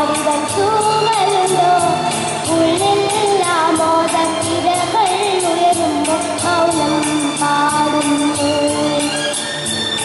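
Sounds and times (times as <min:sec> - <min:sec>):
accompaniment with steady beat: 0:00.0 - 0:10.0.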